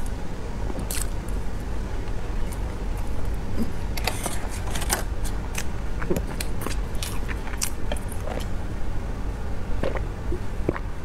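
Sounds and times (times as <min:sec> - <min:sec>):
steady low rumble: 0:00.0 - 0:11.0
chewing soft cake: 0:05.3 - 0:08.6.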